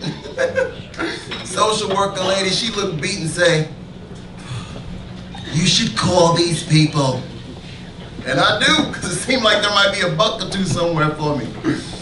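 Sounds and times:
chuckling laughter: 0.0s - 1.3s.

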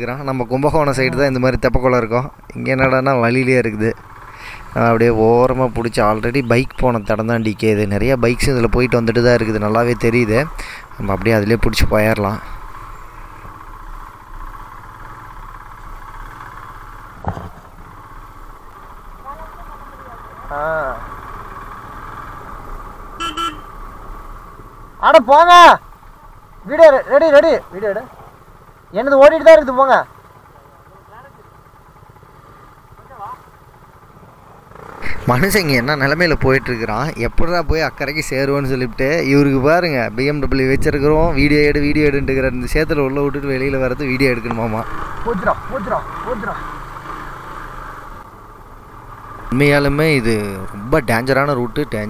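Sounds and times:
motorcycle engine running: 0.0s - 52.0s
motorcycle horn toots: 23.1s - 24.0s.

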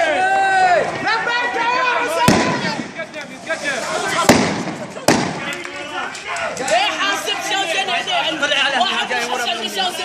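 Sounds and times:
sharp bangs: 2.2s - 5.8s.

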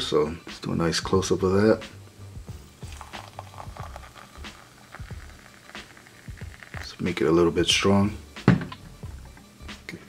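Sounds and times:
quiet background music: 0.0s - 10.0s
water trickling into cup: 2.8s - 7.2s.

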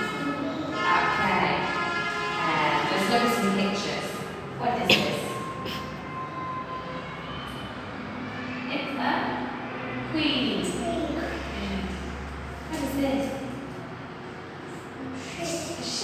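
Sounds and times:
young child speaking: 0.0s - 1.1s, 10.6s - 12.1s, 15.0s - 16.0s.

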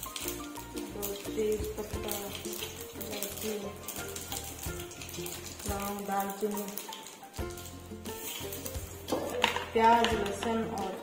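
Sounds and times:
background music: 0.0s - 11.0s
spices sizzling in hot fat: 0.0s - 11.0s.

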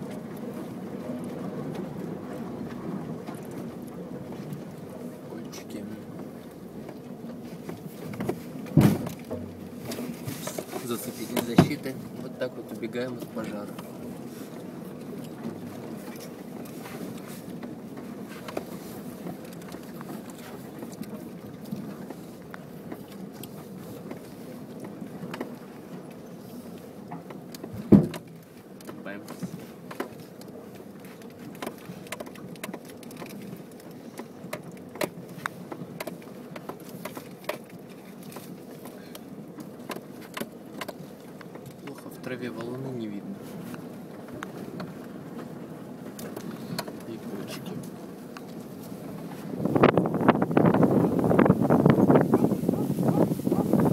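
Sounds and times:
low cabin rumble: 0.0s - 53.9s
loud thump: 8.8s - 9.5s.

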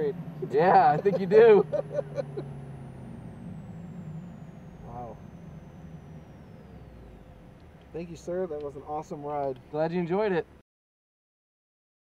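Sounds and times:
car engine low hum: 0.0s - 10.6s.

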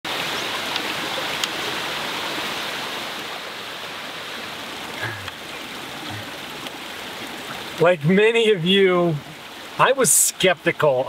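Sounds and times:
stream babbling over rocks: 0.1s - 11.0s.

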